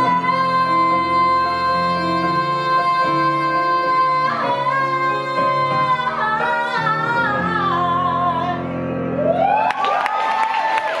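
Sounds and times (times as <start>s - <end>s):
audience applause and whoops: 9.1s - 11.0s.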